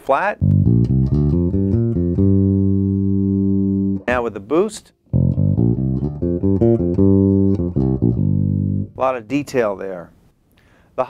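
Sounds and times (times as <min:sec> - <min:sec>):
electric bass notes: 0:00.4 - 0:04.5, 0:05.1 - 0:09.1.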